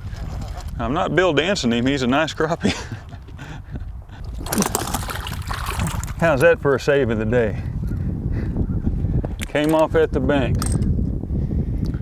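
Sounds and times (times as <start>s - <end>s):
splashing in shallow water: 0.0s - 1.0s, 4.2s - 6.2s.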